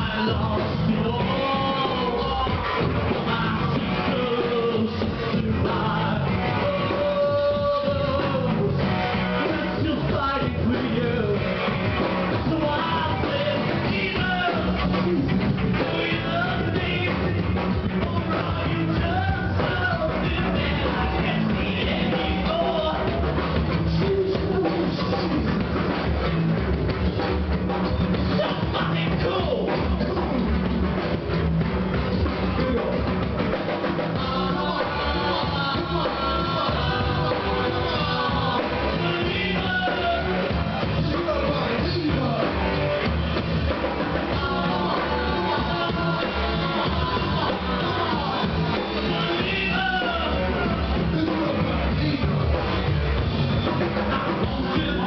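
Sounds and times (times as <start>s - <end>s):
person singing: 0.0s - 25.9s, 33.9s - 52.8s, 53.6s - 55.0s
drum kit: 0.0s - 55.0s
electric guitar: 0.0s - 55.0s.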